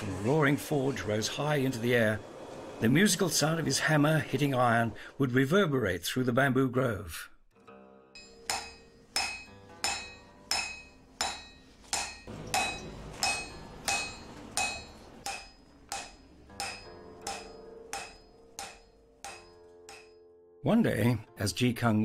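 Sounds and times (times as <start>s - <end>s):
hammer striking iron on anvil: 8.2s - 20.3s.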